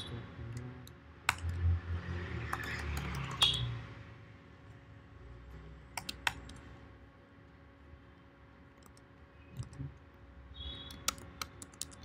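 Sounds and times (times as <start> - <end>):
keyboard key clicks: 10.9 - 12.0.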